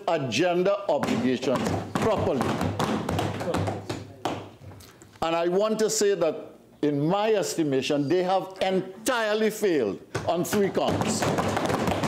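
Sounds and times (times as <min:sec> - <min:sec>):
hands thumping on wooden desks: 0:01.0 - 0:04.8, 0:10.1 - 0:12.0.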